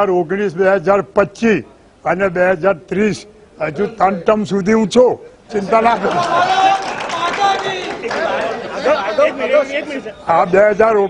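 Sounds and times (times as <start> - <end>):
people chattering: 2.7 - 11.0.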